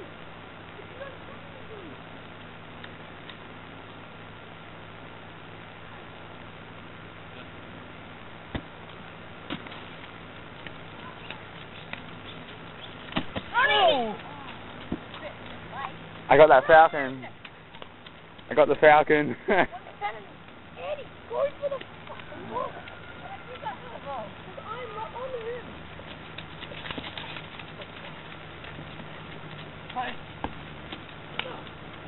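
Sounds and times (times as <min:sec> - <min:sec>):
steady background noise: 0:00.0 - 0:32.0
steady low hum: 0:00.0 - 0:32.0.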